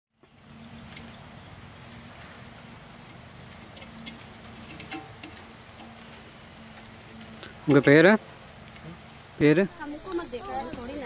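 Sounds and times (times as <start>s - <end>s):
light crackles: 0.3s - 11.0s.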